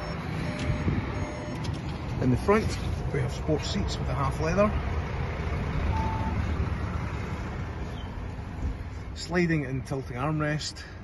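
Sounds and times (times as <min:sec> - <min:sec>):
brief beep: 0:00.0 - 0:01.6, 0:05.9 - 0:06.4.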